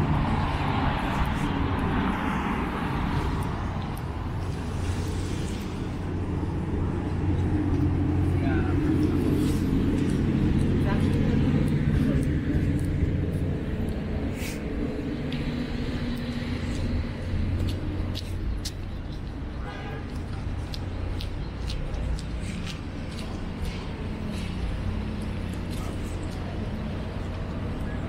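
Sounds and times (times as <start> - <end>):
vehicle engine humming: 0.0 - 28.0
people talking: 8.3 - 9.6, 10.6 - 12.9.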